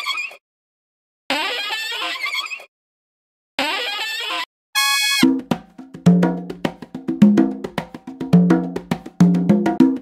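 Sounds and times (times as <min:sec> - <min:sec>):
saxophone squeal: 0:01.3 - 0:02.7, 0:03.6 - 0:05.2.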